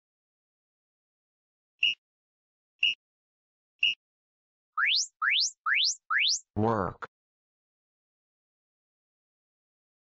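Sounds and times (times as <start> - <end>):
electronic timer rising sweeps: 4.8 - 6.4.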